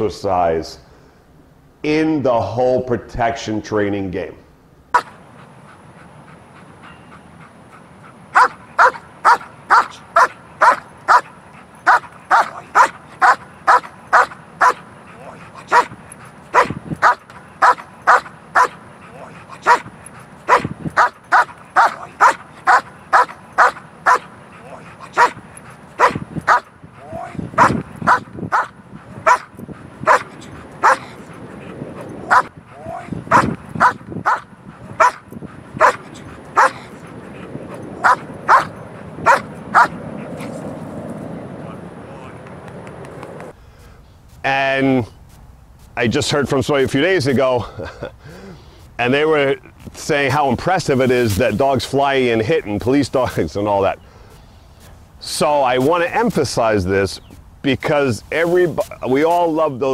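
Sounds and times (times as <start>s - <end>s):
dog barking: 4.9s - 5.2s, 8.4s - 11.3s, 11.9s - 14.8s, 15.7s - 19.9s, 20.5s - 24.3s, 25.1s - 25.4s, 26.0s - 29.5s, 30.1s - 31.2s, 32.3s - 35.2s, 35.8s - 36.9s, 38.0s - 40.0s.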